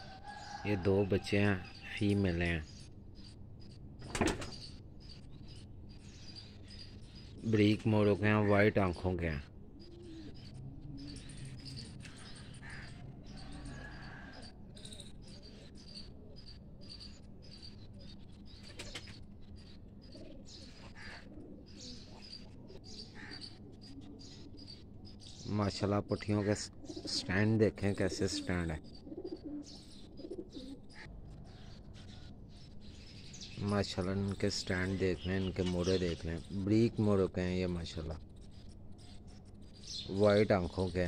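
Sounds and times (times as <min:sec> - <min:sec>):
pigeons cooing: 0:09.4 - 0:25.4, 0:26.0 - 0:33.5.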